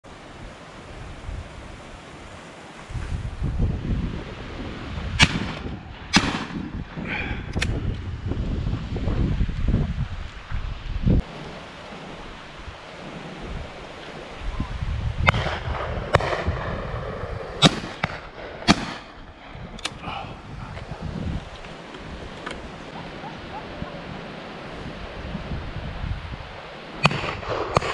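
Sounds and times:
wind rumbling on microphone: 0.0 - 27.9
shotguns firing: 5.2 - 6.7, 15.3 - 19.2, 27.0 - 27.9.

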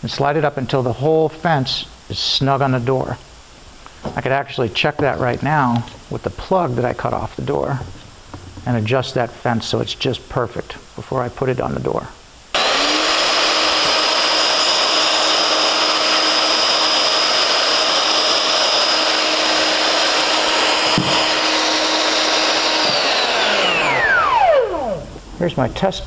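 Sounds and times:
router running: 12.6 - 25.1
router winding down whine: 12.6 - 25.2.

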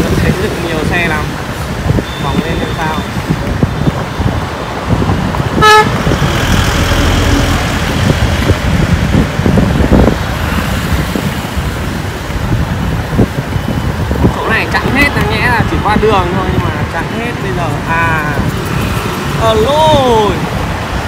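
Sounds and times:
road and wind noise: 0.0 - 21.0
vehicle horn toot: 5.6 - 6.0.

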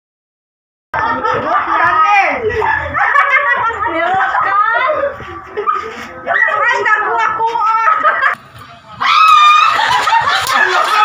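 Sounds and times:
people laughing and squealing: 1.0 - 11.0.

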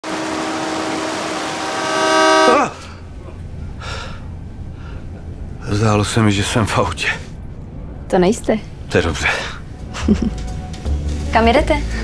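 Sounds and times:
vehicle horn: 0.0 - 2.9
low rumble: 2.8 - 12.0.

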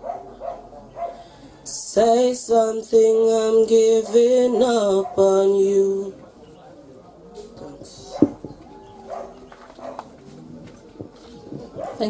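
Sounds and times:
faint voices: 0.0 - 12.0
microphone handling thumps: 7.8 - 8.7, 10.6 - 12.0.

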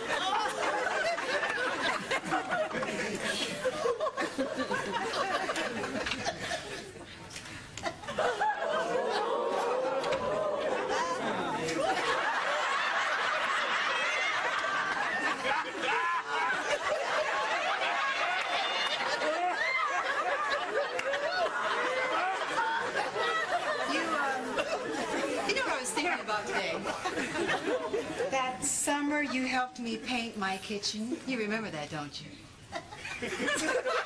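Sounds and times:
studio audience laughing: 0.0 - 7.2, 7.8 - 28.6, 32.7 - 34.0.

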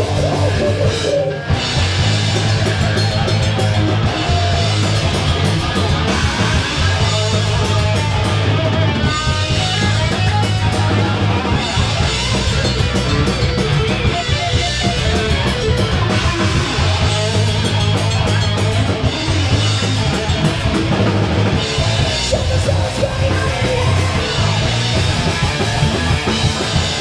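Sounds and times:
drum and cymbal hits: 0.0 - 27.0
electric guitar: 0.0 - 27.0.

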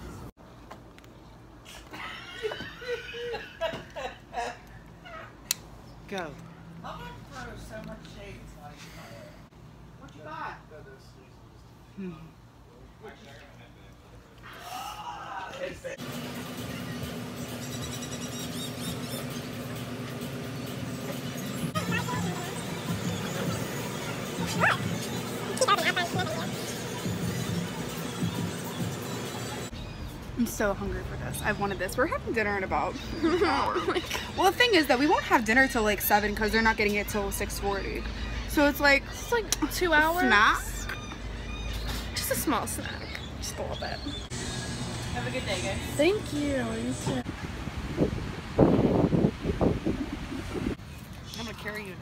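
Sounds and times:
dog whining: 21.1 - 27.6
small dog yipping: 21.8 - 27.1.

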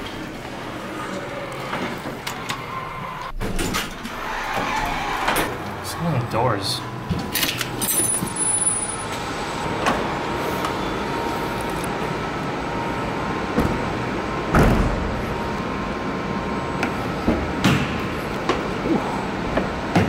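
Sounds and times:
parking garage hum and hiss: 0.0 - 20.0.

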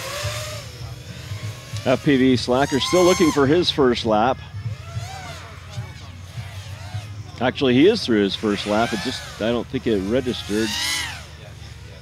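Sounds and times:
quadcopter motors whining: 0.0 - 12.0
commentator speaking: 7.4 - 12.0.

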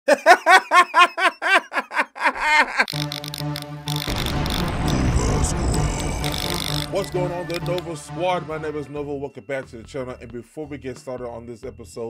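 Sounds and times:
man laughing out loud: 0.1 - 2.9.

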